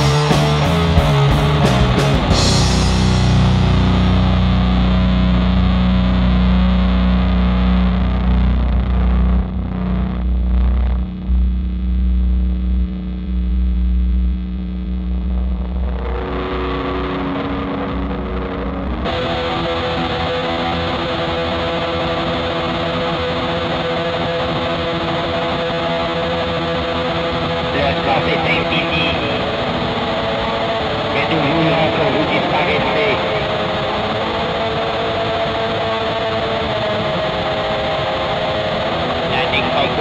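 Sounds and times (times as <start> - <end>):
doom metal band: 0.0 - 12.0
distorted electric guitar: 0.0 - 40.0.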